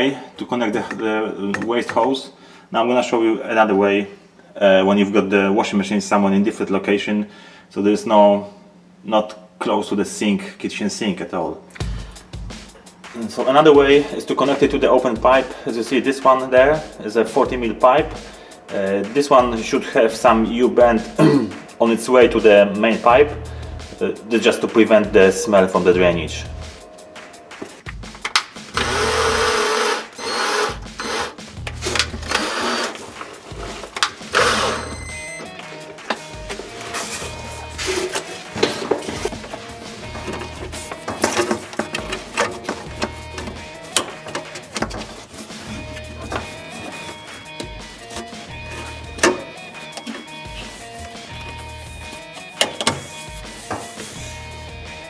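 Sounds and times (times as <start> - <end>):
plastic hose clicking and rustling: 27.7 - 28.9, 31.6 - 32.4, 33.0 - 34.2, 37.9 - 50.3
drill driving screw into wood: 28.7 - 33.0, 34.3 - 35.0
guitar music: 30.8 - 55.0.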